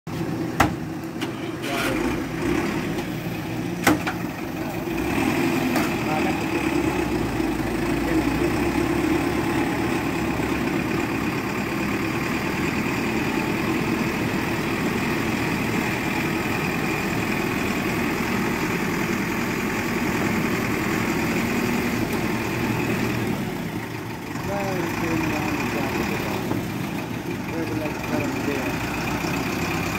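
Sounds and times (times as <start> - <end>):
diesel engine under load: 0.1 - 29.9.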